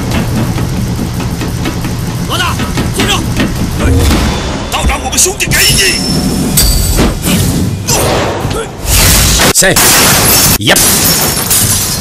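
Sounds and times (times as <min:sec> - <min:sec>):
steady low rumble: 0:00.0 - 0:08.7.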